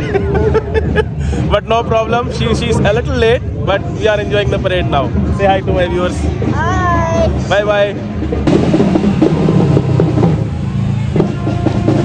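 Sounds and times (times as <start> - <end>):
drums: 0.0 - 12.0
marching band playing: 1.7 - 12.0.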